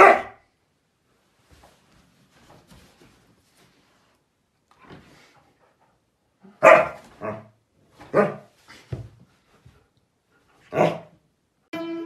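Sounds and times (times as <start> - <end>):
dog barking: 0.0 - 0.4, 6.5 - 7.5, 8.1 - 8.5, 10.7 - 11.1.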